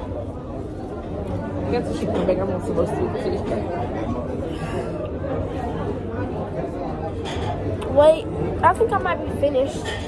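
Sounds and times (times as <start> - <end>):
background chatter of many voices: 0.0 - 10.0.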